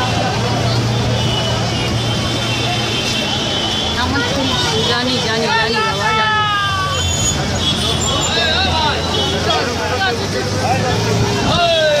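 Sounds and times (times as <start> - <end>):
people talking: 0.0 - 12.0
traffic hum: 0.0 - 12.0.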